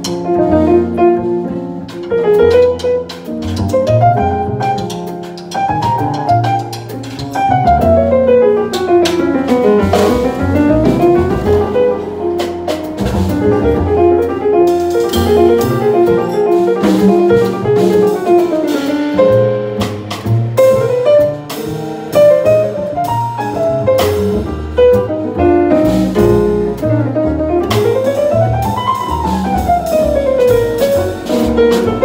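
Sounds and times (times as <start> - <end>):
double bass: 0.0 - 32.0
drum kit with cymbals: 0.0 - 32.0
piano with fast runs: 0.0 - 32.0.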